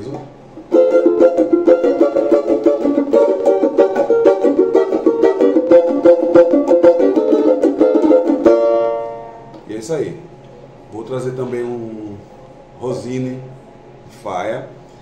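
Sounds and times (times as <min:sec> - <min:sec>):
banjo strummed in fast chords: 0:00.7 - 0:09.1.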